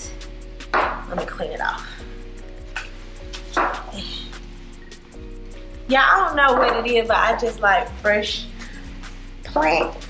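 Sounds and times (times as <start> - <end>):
music with steady beat and chords: 0.0 - 10.0.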